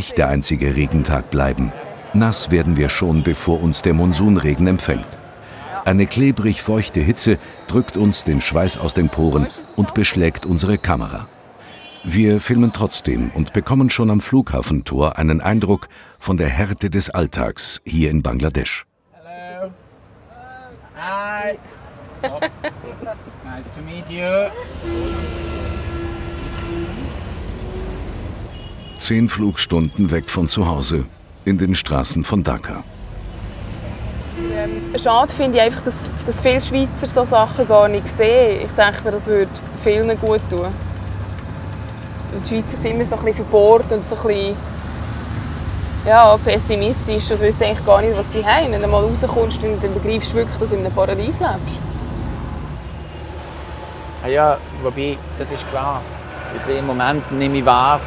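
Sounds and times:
wet street traffic rumble: 0:00.0 - 0:17.1, 0:19.7 - 0:58.0
held tone: 0:28.5 - 0:31.1.

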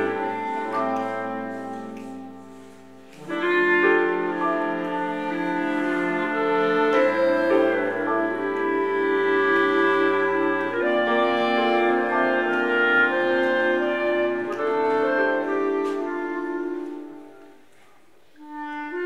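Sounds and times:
clarinet ensemble chords: 0:00.0 - 0:19.0.

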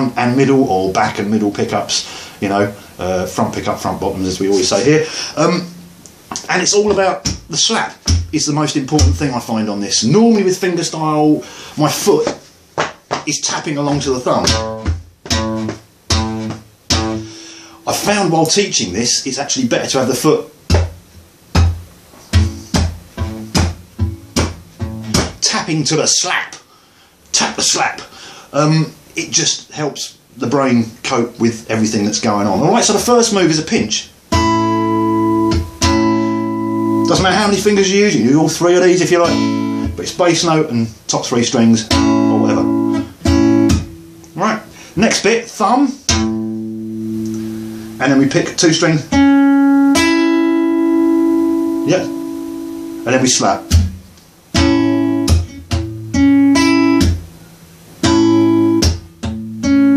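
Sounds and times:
acoustic guitar slap fingerstyle: 0:05.7 - 0:08.4, 0:12.2 - 0:17.3, 0:20.7 - 0:25.6, 0:34.3 - 0:37.7, 0:39.1 - 0:40.2, 0:41.7 - 0:44.4, 0:53.6 - 0:57.2, 0:58.0 - 0:59.9.

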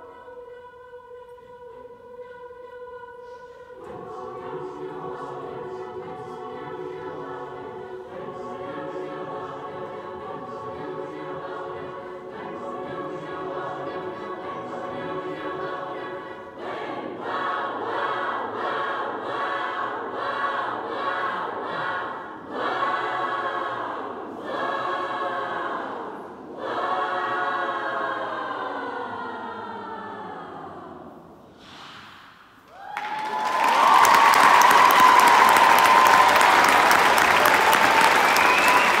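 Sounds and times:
choir singing: 0:00.0 - 0:31.6, 0:33.2 - 0:39.0
audience applause: 0:32.7 - 0:39.0
held high whistle or cheer: 0:32.7 - 0:39.0.

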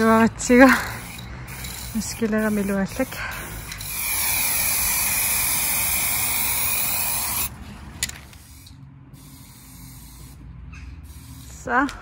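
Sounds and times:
spray can hissing: 0:00.5 - 0:07.5, 0:08.3 - 0:11.7.

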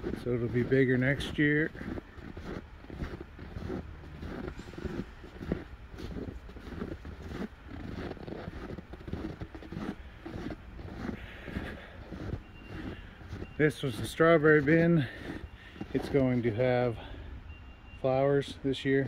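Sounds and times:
footsteps crunching in snow: 0:00.0 - 0:17.2
steady low rumble: 0:00.0 - 0:17.5.

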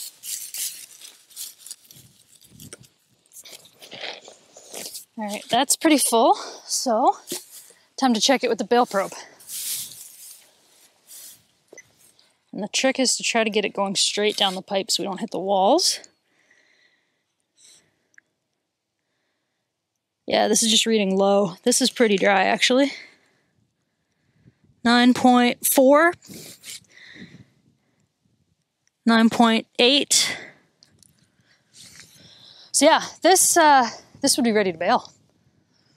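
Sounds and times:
rustling of dry hay: 0:00.0 - 0:05.6, 0:08.8 - 0:12.2.

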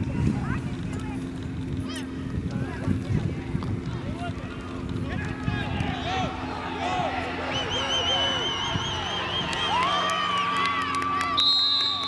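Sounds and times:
wind rumbling on microphone: 0:00.0 - 0:10.8
steady low hum: 0:00.0 - 0:11.4
distant shouting voices: 0:00.0 - 0:12.0.

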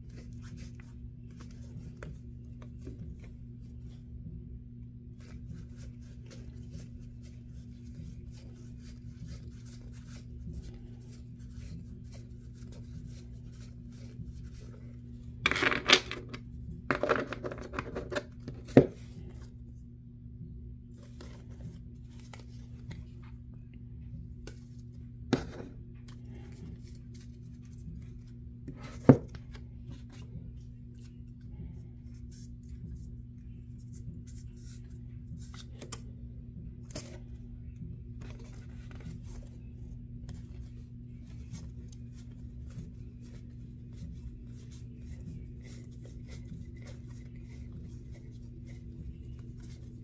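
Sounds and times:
low electrical hum: 0:00.0 - 0:50.0
playing cards flicking and sliding: 0:00.1 - 0:04.0, 0:05.2 - 0:16.2, 0:21.0 - 0:23.3, 0:38.2 - 0:39.6, 0:40.2 - 0:50.0.

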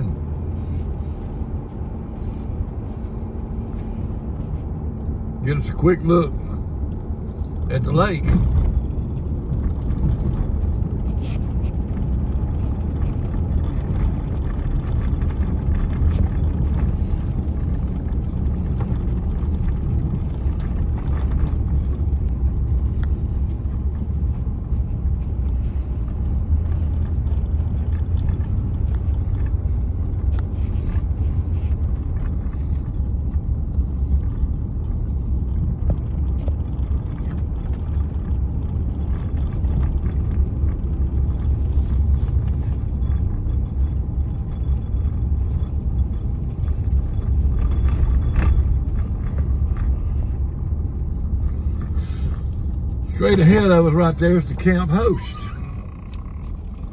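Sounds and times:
vehicle driving on paved road: 0:00.0 - 0:56.9.

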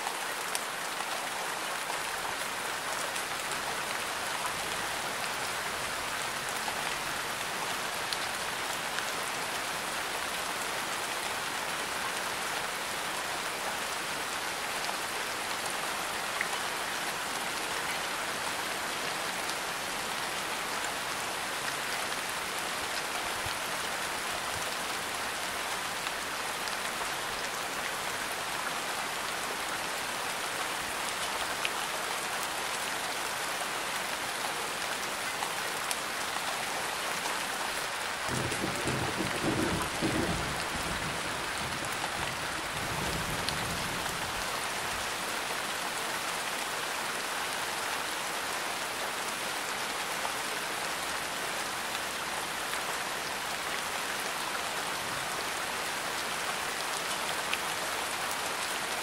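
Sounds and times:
steady rain hiss: 0:00.0 - 0:59.0.

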